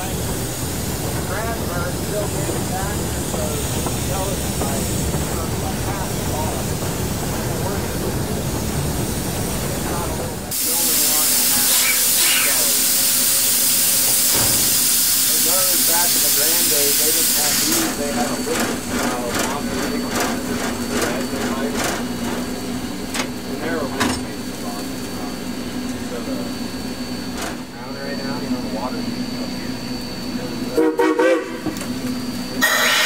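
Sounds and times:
loud hiss of escaping steam: 0.0 - 25.4, 32.6 - 33.0
steam locomotive running hum: 0.0 - 33.0.

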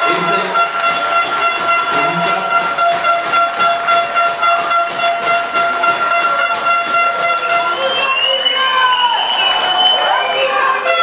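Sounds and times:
horn sounding long steady note: 0.0 - 11.0.

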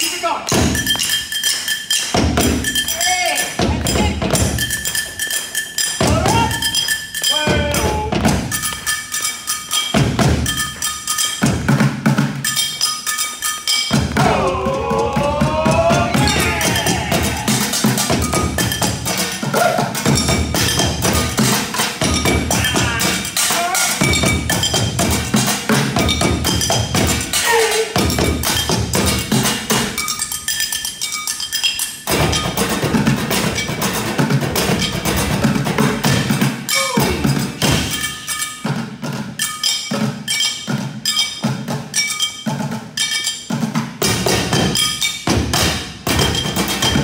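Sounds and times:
pots and pans struck as drums: 0.5 - 47.0.

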